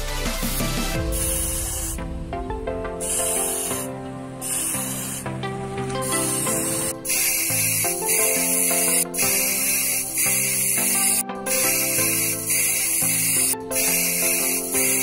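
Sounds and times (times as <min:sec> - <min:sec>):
background music: 0:00.0 - 0:15.0
spray paint can hissing: 0:00.4 - 0:02.0, 0:03.0 - 0:05.3, 0:06.0 - 0:15.0.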